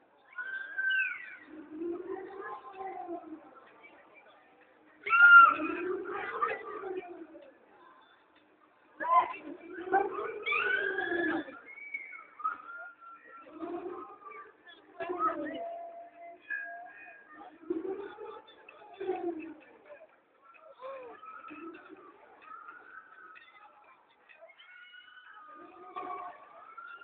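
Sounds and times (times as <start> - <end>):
people calling out and talking: 0.0 - 27.0.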